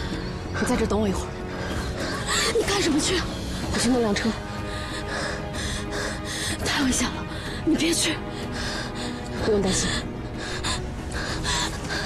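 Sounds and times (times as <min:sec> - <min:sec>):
background score music: 0:00.0 - 0:12.0
woman gasping and crying: 0:01.7 - 0:02.6.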